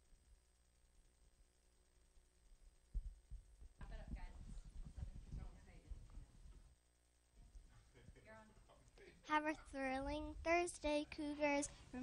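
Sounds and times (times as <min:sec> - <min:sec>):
soft low thumps: 0:02.9 - 0:06.8.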